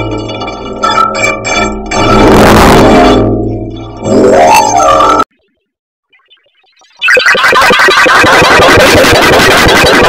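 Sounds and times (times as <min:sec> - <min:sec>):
harsh electronic distortion: 0:06.8 - 0:10.0.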